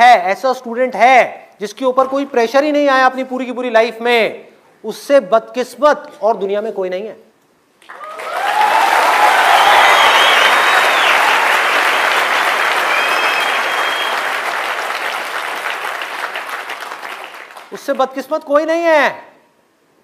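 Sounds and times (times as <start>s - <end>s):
large audience applauding: 7.8s - 17.8s
cheers and whistles: 7.9s - 11.8s, 12.6s - 14.4s.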